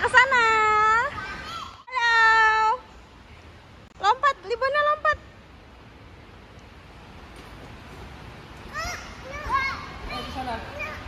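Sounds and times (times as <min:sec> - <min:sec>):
faint hall background noise: 0:00.0 - 0:11.0.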